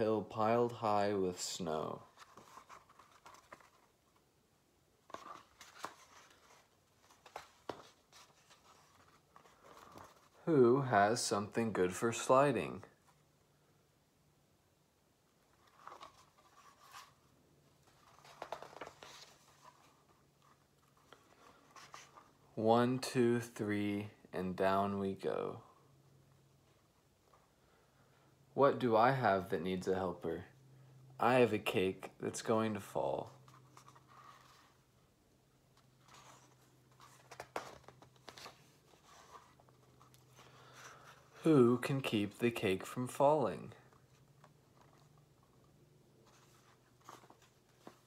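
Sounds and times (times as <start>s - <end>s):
paper book rustling: 1.9s - 4.3s, 5.0s - 10.5s, 15.5s - 22.5s, 33.1s - 35.1s, 35.7s - 43.1s, 43.7s - 48.0s
paper crackling: 17.8s - 22.4s, 35.8s - 41.5s, 43.8s - 48.0s.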